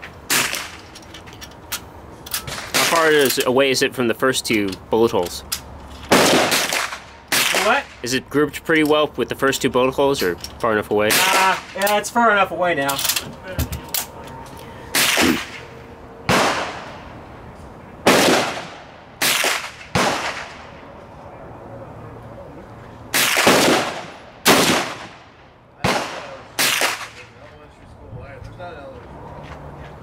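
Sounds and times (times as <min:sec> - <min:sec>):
gunshots with echo: 0:06.1 - 0:07.9, 0:16.3 - 0:17.0, 0:18.0 - 0:20.7, 0:23.2 - 0:25.2.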